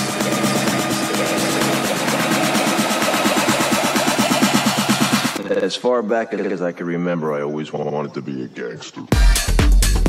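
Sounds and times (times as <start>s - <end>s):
electronic dance music: 0.0s - 5.4s, 9.1s - 10.0s.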